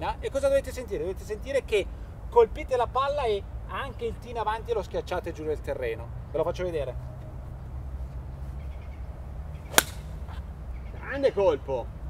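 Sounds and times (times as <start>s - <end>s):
golf club striking ball: 9.7s - 10.4s.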